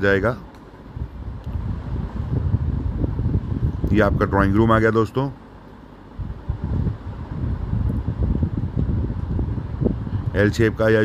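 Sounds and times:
wind buffeting microphone: 0.9 - 5.0, 6.1 - 11.0.

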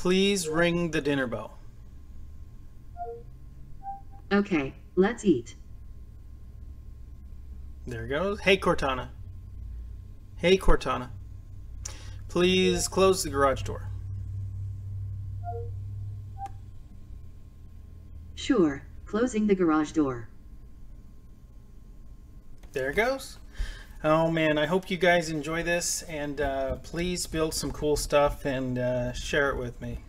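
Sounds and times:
low steady hum: 0.0 - 30.0
electronic chime notes: 3.0 - 4.2, 15.4 - 15.8.

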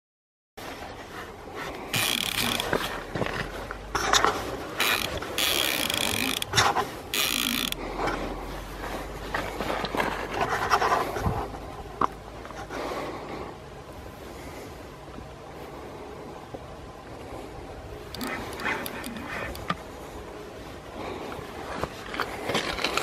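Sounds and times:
reel rattling and rod handling: 1.8 - 8.2, 18.1 - 19.8, 21.8 - 23.0
fishing reel drag buzzing: 1.9 - 2.8, 4.8 - 7.8.

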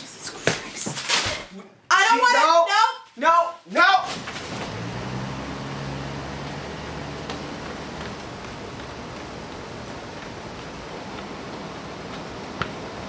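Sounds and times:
street ambience hiss: 4.1 - 13.0.

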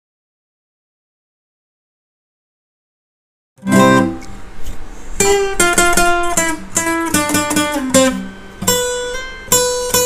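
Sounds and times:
acoustic guitar chord: 3.6 - 10.0.

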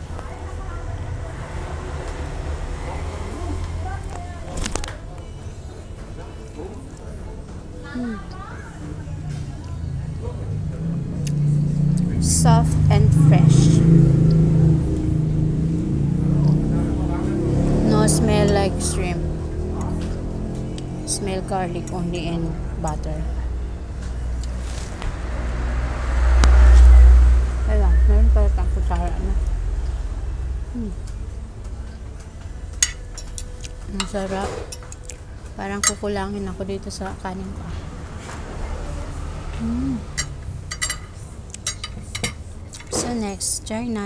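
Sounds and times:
vehicle engine running: 0.0 - 44.0.

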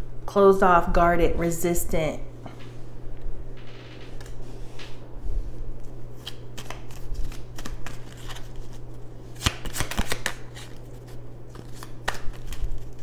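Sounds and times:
cards being shuffled: 5.8 - 13.0.

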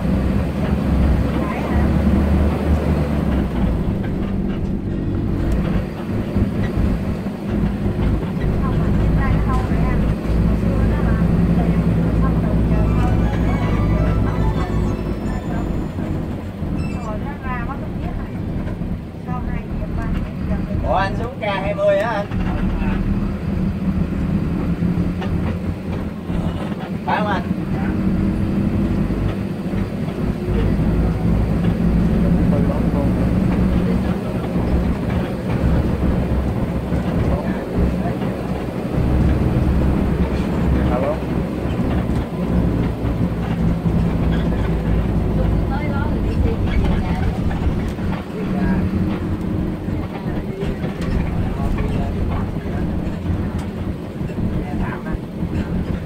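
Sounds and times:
bus engine and road rumble: 0.0 - 56.0
wavering high-pitched sounds: 12.7 - 17.0.

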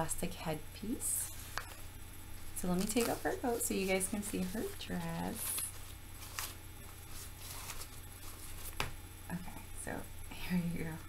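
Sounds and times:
raincoat rustling and crinkling: 1.3 - 9.0.

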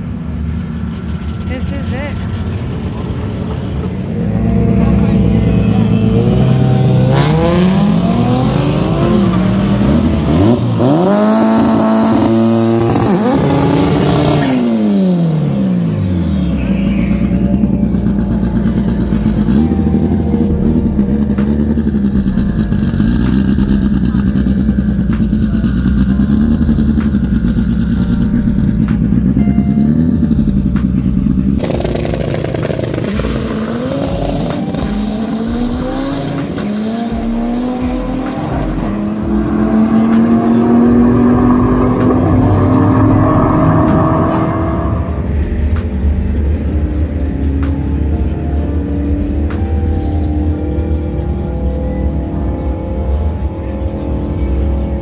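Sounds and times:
drag car engine revving: 0.0 - 55.0.

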